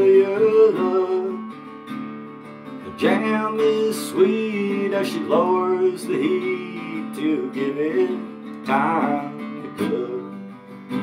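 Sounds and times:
man singing: 0.0s - 1.7s, 2.8s - 11.0s
strummed acoustic guitar: 0.0s - 11.0s.

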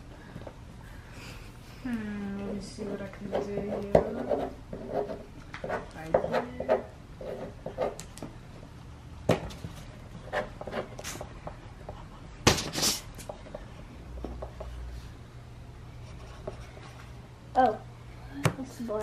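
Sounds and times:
marker pen scratching on paper: 2.8s - 8.1s, 9.4s - 13.6s, 16.0s - 17.1s
marker pen tapping: 3.3s - 8.3s.

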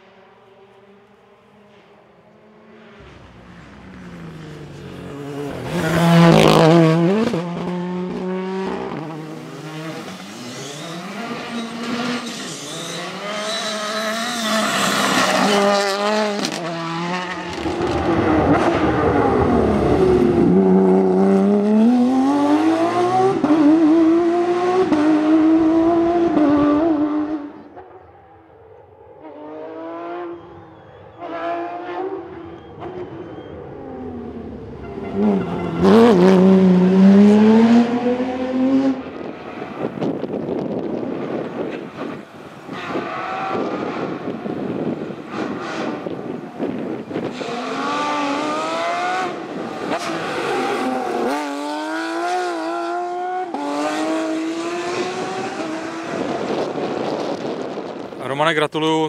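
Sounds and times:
rally car engines revving past: 0.0s - 58.2s.

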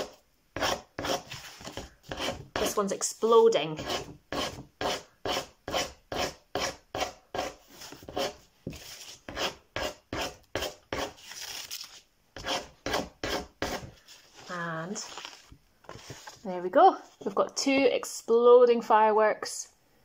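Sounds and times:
tool scratching paper: 0.0s - 2.8s, 3.8s - 11.2s, 12.4s - 13.9s.

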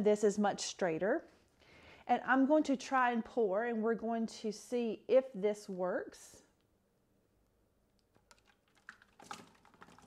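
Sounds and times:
water splashing on paper cups: 8.2s - 10.0s.

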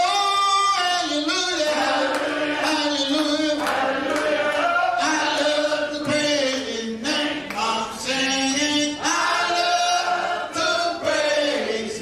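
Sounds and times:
choir singing long notes: 1.5s - 12.0s.

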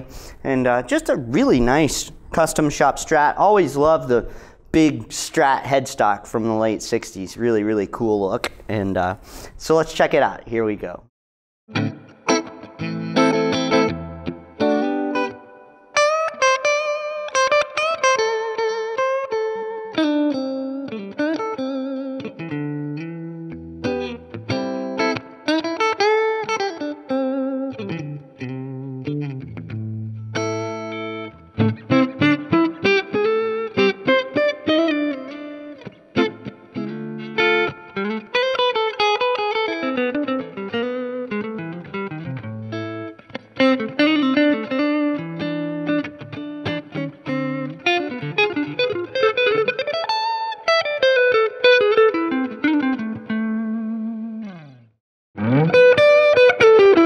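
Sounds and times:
electric guitar playing: 0.0s - 5.2s, 11.7s - 57.0s.

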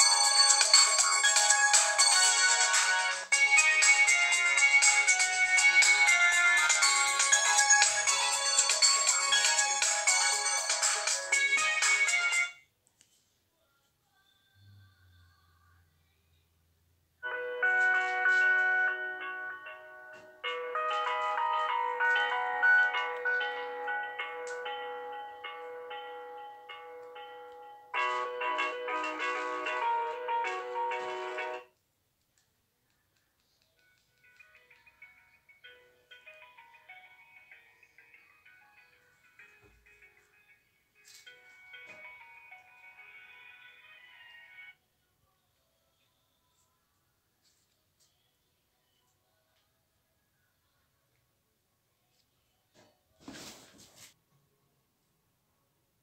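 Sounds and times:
phone ringtone melody: 0.0s - 12.6s, 17.2s - 31.7s, 41.1s - 44.8s.

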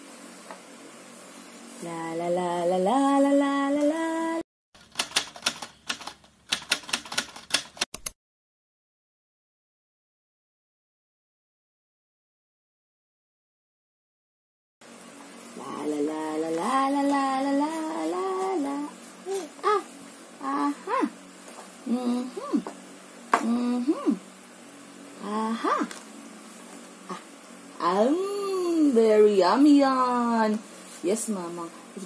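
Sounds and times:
keyboard typing clicks: 4.8s - 8.2s.

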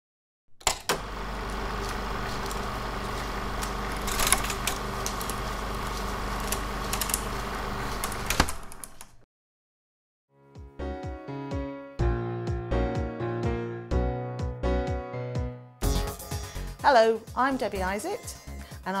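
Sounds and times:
sharp projector clicks: 0.6s - 7.4s
film projector whirring: 0.7s - 9.0s.

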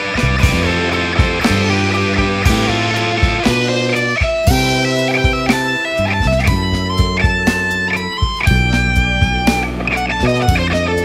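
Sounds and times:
instrumental music with beat: 0.0s - 11.0s.

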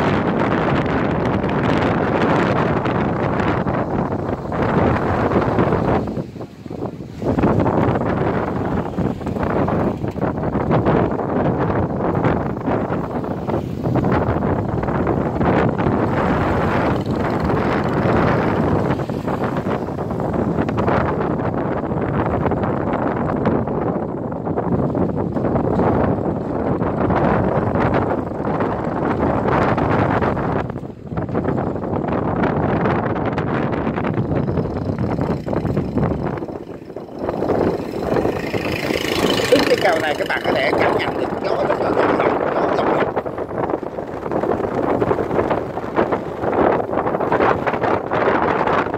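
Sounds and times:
wind buffeting microphone: 0.0s - 48.9s
vehicles rumbling over steel plates: 1.6s - 21.2s, 33.9s - 47.4s.

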